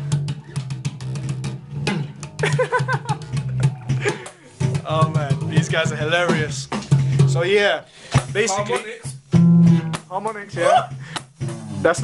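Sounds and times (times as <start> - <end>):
bass guitar riff: 0.0 - 12.0.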